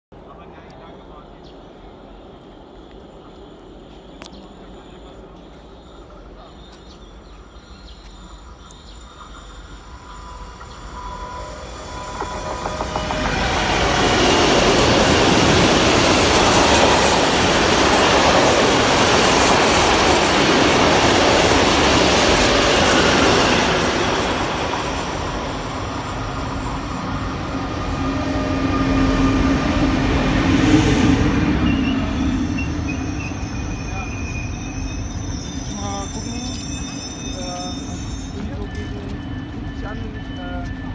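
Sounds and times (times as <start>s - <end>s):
freight train rolling past: 0.2s - 40.9s
train braking hum: 0.8s - 40.9s
wheel squeal: 9.0s - 17.1s, 31.6s - 40.9s.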